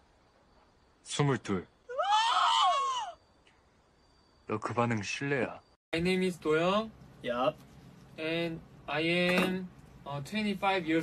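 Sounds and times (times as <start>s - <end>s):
high-pitched scream: 1.9s - 3.2s.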